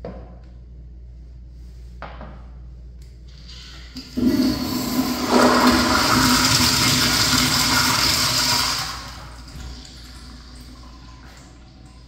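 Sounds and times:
toilet flushing: 3.3s - 12.0s.

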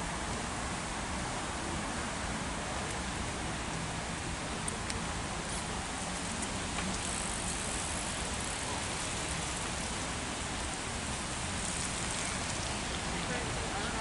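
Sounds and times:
steady rain: 0.0s - 14.0s.

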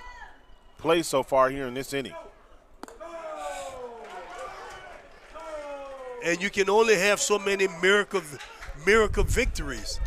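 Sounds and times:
baseball smacking into mitt: 2.8s - 3.0s.

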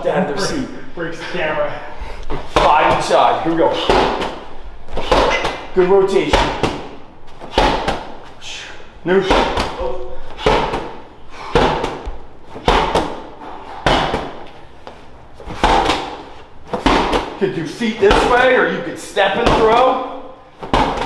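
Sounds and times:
medicine ball slamming into wall: 2.5s - 4.4s, 5.0s - 8.1s, 9.2s - 12.0s, 12.6s - 14.4s, 15.5s - 17.4s, 19.4s - 21.0s.

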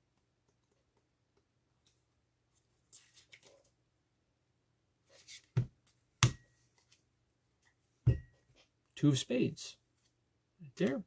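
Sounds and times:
playing cards rustling: 2.9s - 3.7s.

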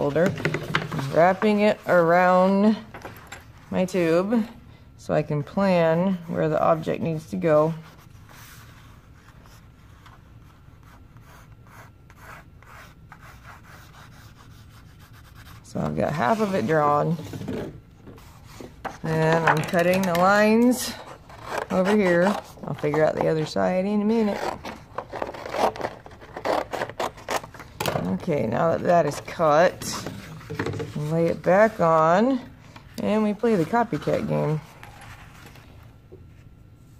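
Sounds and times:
pencil scratching on cardboard: 10.8s - 16.8s.

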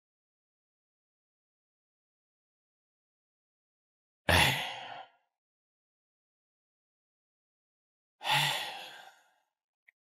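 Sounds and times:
breathy sigh: 8.2s - 9.4s.

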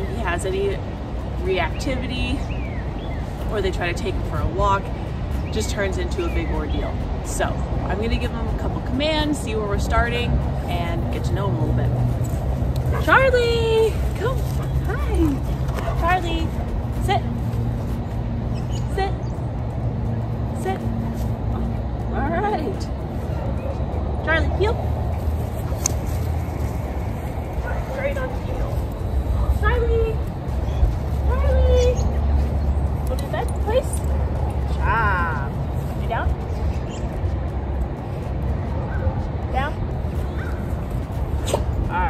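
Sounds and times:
low outdoor rumble: 0.0s - 42.0s.

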